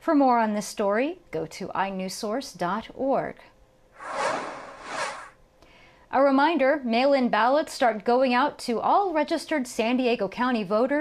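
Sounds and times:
airy whoosh: 0:04.0 - 0:05.3.

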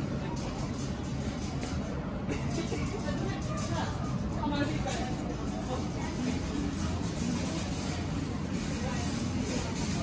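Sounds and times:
shop background rumble: 0:00.0 - 0:10.0.

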